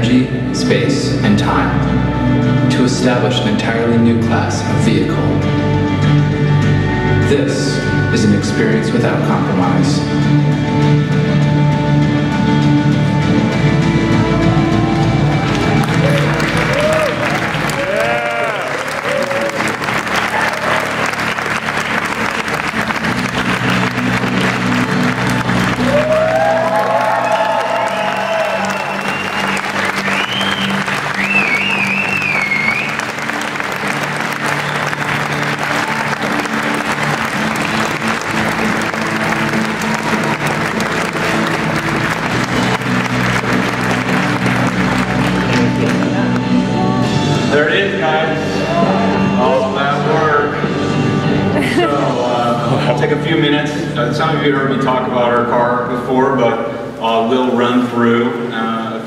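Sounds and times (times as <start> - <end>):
loud music: 0.0 - 58.7
audience applauding and cheering: 10.8 - 47.2
crowd whooping: 14.2 - 45.9
wavering whistle: 25.9 - 33.1.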